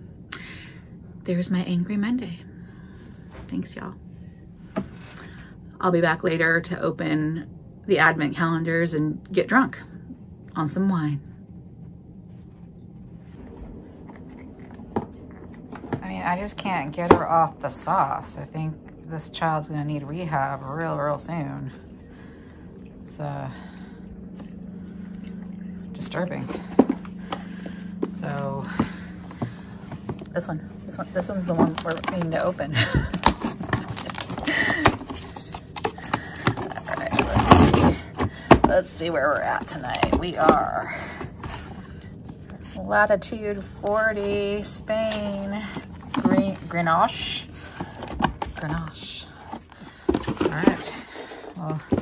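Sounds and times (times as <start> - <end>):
puppy chewing cardboard: 28.9 - 50.8.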